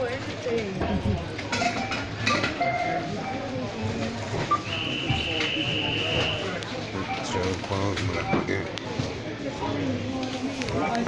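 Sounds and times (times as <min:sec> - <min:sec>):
short electronic beeps: 0:04.4 - 0:07.4.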